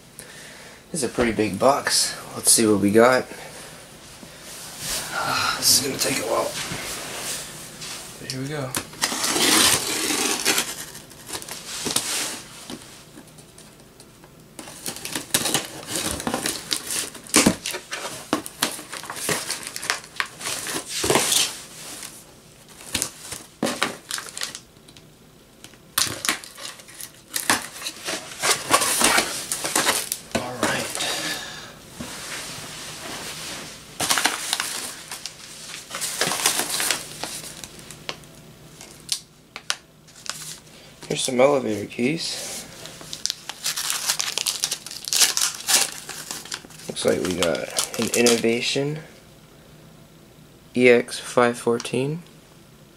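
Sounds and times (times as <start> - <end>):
crumpled newspaper rustling: 8.5 - 12.9, 14.6 - 24.6, 26.0 - 31.2, 33.0 - 38.1, 40.1 - 41.3, 42.4 - 48.8
packing tape ripping off cardboard: 8.8 - 12.4, 14.6 - 21.6, 26.0 - 30.8, 43.1 - 48.5.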